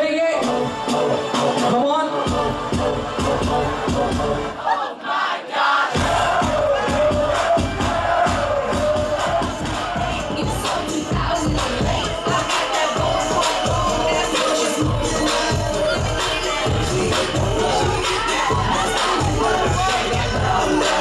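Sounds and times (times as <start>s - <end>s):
crowd shouting and cheering: 0.0s - 21.0s
loud dance music: 0.0s - 21.0s.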